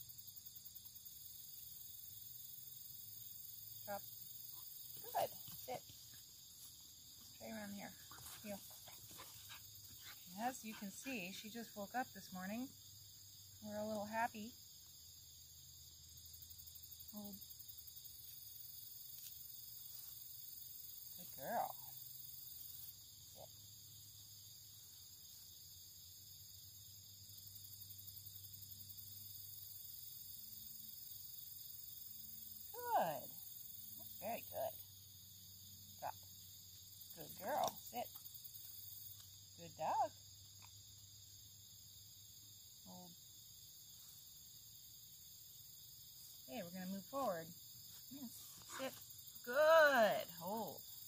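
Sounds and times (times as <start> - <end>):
insects chirring: 0.0 - 51.0.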